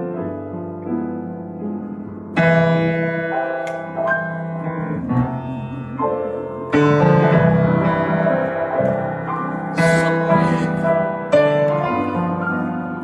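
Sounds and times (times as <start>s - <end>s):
solo grand piano: 0.0s - 13.0s.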